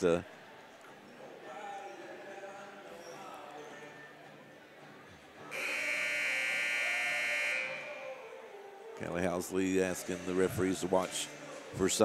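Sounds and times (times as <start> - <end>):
faint crowd chatter: 0.0 - 12.0
scoreboard buzzer: 5.5 - 7.9.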